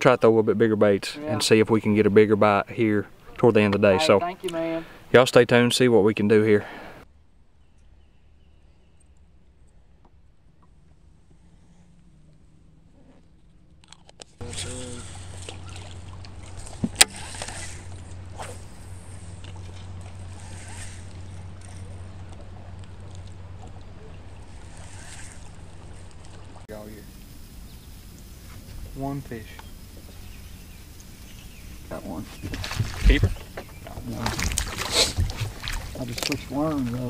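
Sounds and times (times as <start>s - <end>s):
steady low hum: 6.6s - 37.0s.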